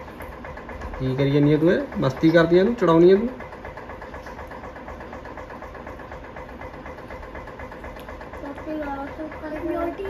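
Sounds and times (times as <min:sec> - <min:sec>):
motor running with fast pulse: 0:00.0 - 0:10.0.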